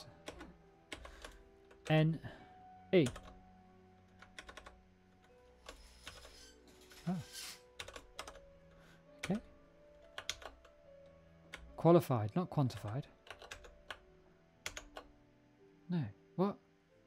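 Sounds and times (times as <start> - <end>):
typing on computer keyboard: 0.2 - 2.0, 3.0 - 3.4, 4.1 - 4.8, 7.8 - 8.4, 10.0 - 10.8, 12.7 - 14.0, 14.6 - 15.1.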